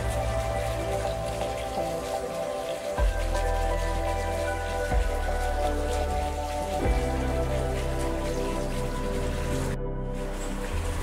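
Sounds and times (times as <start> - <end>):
fine patter like light rain: 0.0 - 11.0
soft music with held notes: 0.0 - 11.0.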